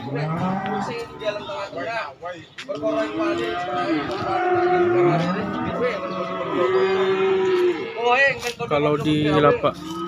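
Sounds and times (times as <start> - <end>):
cow mooing: 0.0 - 1.4, 3.0 - 8.0, 9.3 - 10.0.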